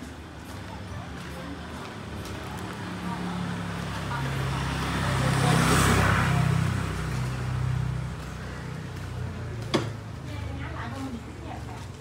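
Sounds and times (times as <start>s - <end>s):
motor scooter passing: 1.9s - 12.0s.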